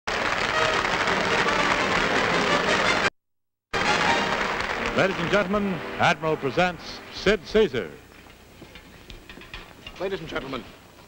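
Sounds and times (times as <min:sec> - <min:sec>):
audience applauding: 0:00.1 - 0:03.1, 0:03.8 - 0:06.6.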